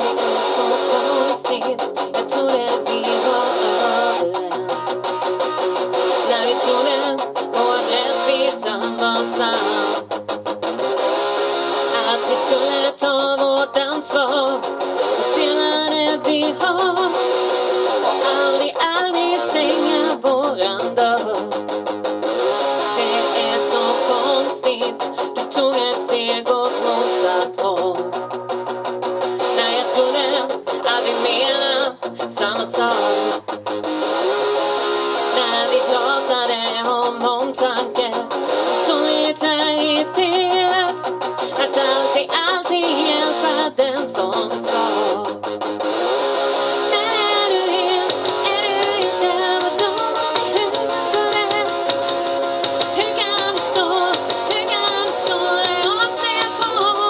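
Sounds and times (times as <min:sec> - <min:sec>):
person singing: 0:00.0 - 0:10.1, 0:11.5 - 0:33.5, 0:34.6 - 0:45.6, 0:46.4 - 0:57.0
electric guitar: 0:00.0 - 0:57.0.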